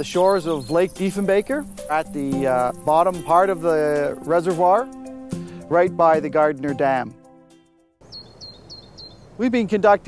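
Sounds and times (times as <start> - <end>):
bird chirping: 0.0 - 5.6, 8.0 - 9.5
faint outdoor noise: 0.0 - 7.1, 8.0 - 10.0
background music: 0.0 - 8.0.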